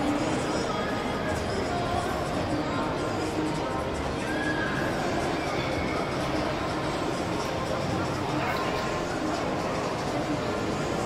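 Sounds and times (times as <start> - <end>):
background noise in large hall: 0.0 - 11.0.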